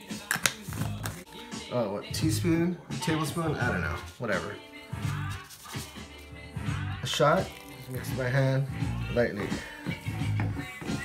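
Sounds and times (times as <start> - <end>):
background music with low notes: 0.0 - 11.0.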